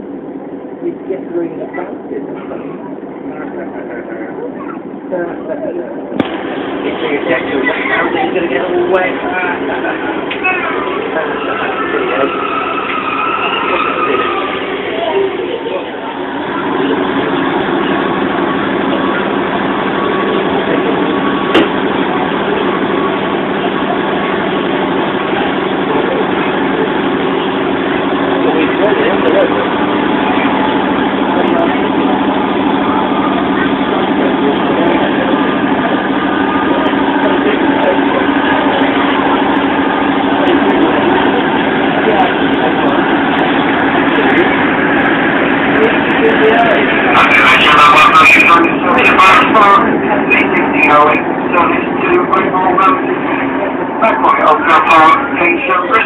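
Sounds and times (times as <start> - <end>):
passengers chattering: 0.0 - 56.0
train running hum: 0.0 - 56.0.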